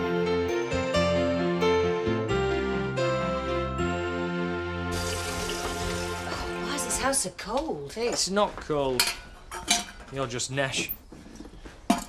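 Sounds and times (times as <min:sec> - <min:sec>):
held chord of tv theme music: 0:00.0 - 0:06.9
tap water running into kettle: 0:04.9 - 0:07.0.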